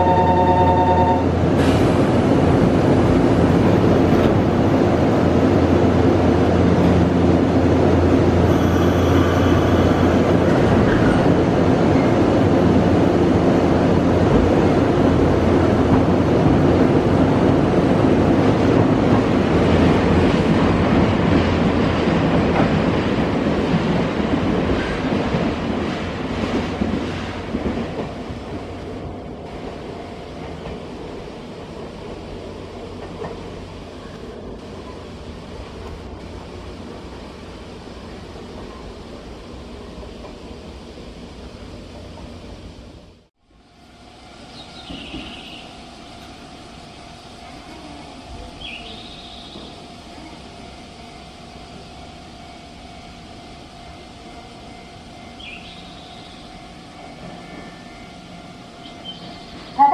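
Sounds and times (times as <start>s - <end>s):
electric train motor hum: 7.7s - 11.4s.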